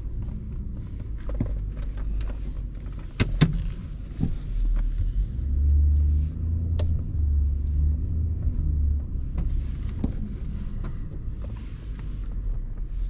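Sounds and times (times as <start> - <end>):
engine rumbling under load: 0.0 - 13.0.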